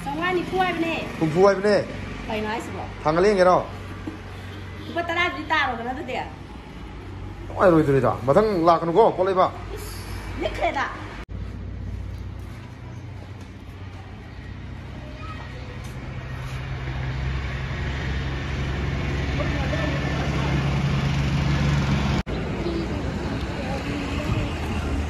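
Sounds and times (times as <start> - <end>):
vehicle engine rumble: 0.0 - 25.0.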